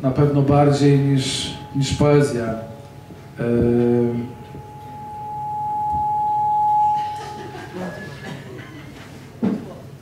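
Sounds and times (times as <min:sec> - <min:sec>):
microphone feedback whistling tone: 0:00.6 - 0:08.5.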